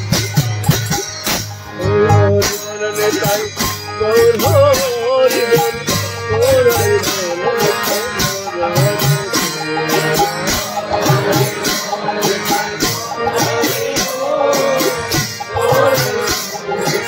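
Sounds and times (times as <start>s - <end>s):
harmonium chords: 0.0s - 17.0s
person singing: 1.8s - 17.0s.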